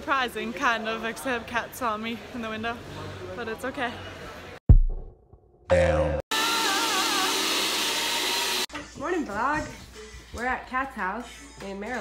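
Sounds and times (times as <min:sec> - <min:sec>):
blender running: 0:06.3 - 0:08.7.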